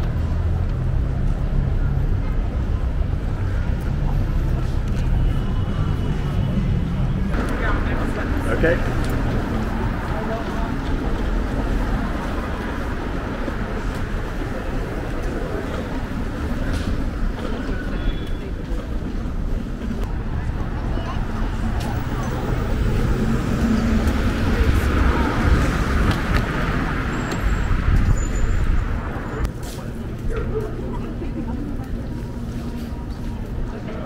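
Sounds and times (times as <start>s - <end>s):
passersby talking: 0.0s - 34.0s
passing cars: 0.0s - 34.0s.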